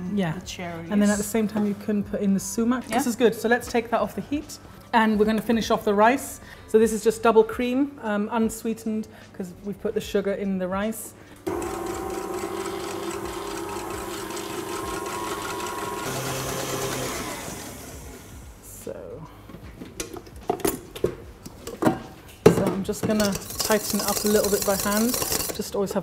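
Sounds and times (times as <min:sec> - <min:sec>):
electric stand mixer whisking: 0:11.5 - 0:18.5, 0:23.3 - 0:25.6.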